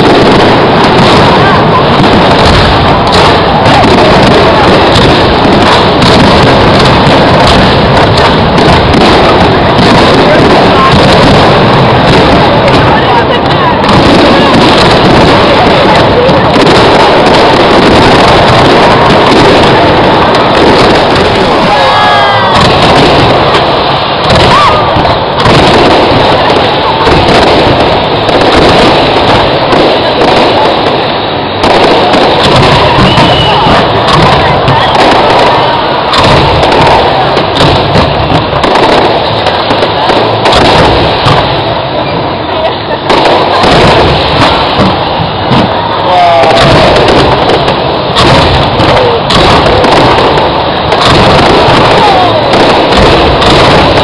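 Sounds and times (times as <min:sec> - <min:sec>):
crowd voices: 0:00.0 - 0:54.0
fireworks bursting: 0:00.0 - 0:54.0.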